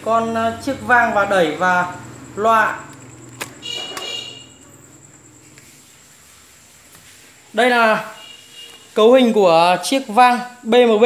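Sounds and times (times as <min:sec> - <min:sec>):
brief buzzing tone: 0:03.6 - 0:04.7.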